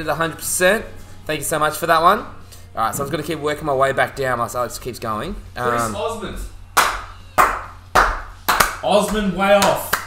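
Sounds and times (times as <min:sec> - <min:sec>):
man talking: 0:00.0 - 0:06.5
hand claps: 0:06.8 - 0:10.0.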